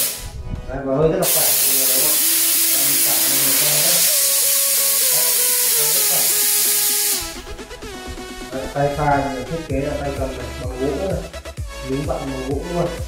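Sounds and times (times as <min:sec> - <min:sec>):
espresso steam wand hissing: 0:00.0 - 0:00.2, 0:01.2 - 0:07.4.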